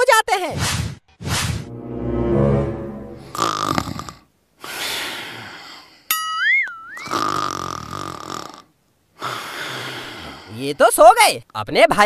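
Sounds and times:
cartoon snoring: 3.3 - 4.2, 7.0 - 10.3.

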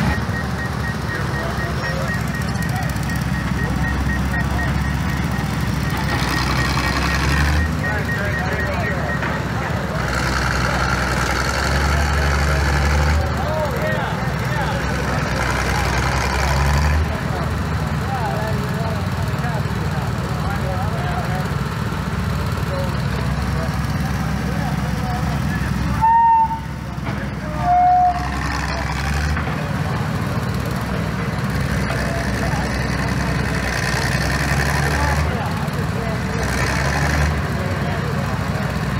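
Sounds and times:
tractor engines running: 0.0 - 38.9.

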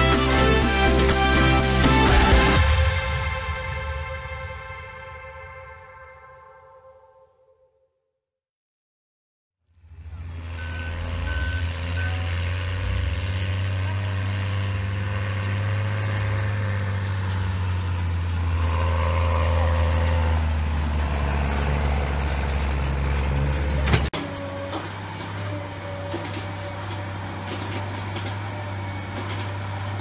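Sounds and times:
wheel loader engine: 0.0 - 3.6, 9.7 - 30.0
tractor diesel engine droning: 0.0 - 5.8, 9.7 - 30.0.

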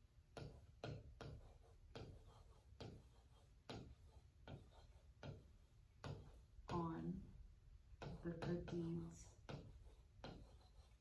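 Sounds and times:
pen tapping on touchscreen: 0.3 - 7.0, 7.9 - 11.0.

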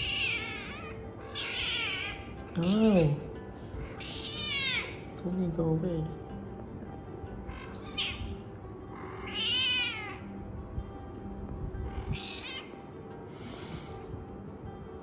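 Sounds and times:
cat meowing: 0.0 - 2.4, 3.8 - 5.0, 7.5 - 10.3, 11.9 - 12.7
faint background music: 0.0 - 15.0.

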